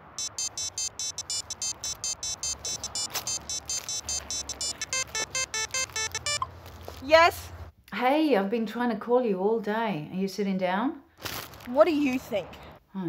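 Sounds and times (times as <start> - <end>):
phone ringtone beeping melody: 0.0 - 6.6.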